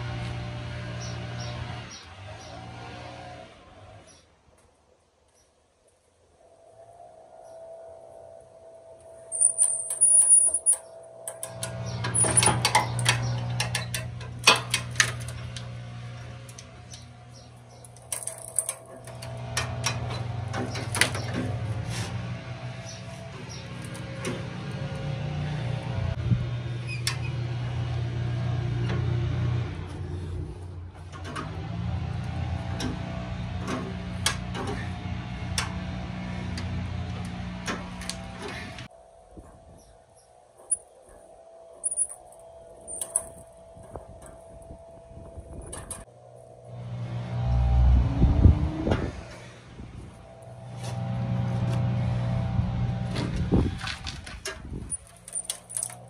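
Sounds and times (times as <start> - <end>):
metal clatter: 17.7 - 21.6, 53.2 - 56.0.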